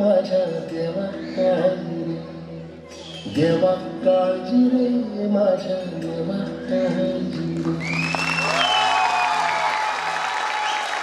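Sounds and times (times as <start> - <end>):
high whistles: 2.9 - 3.6, 7.8 - 9.6
audience applause: 7.7 - 11.0.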